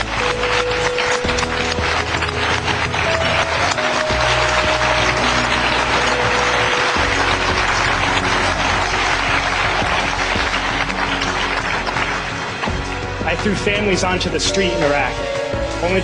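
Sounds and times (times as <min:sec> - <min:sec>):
background music: 0:00.0 - 0:16.0
large audience applauding: 0:00.0 - 0:16.0.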